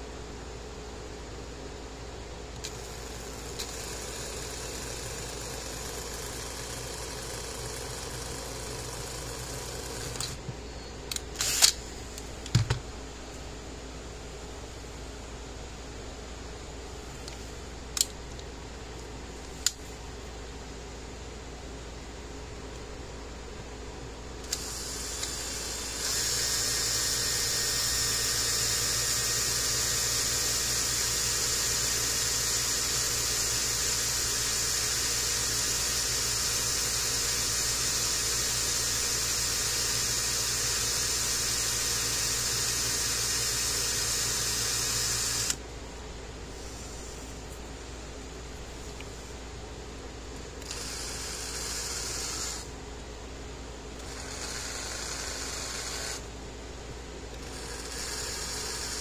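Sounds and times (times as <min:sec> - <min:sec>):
cordless drill boring plastic: 0:02.6 - 0:10.4, 0:11.1 - 0:11.8, 0:24.4 - 0:45.6, 0:50.6 - 0:52.7, 0:54.0 - 0:56.2, 0:57.3 - 0:59.0
sharp clicks: 0:11.1 - 0:12.8.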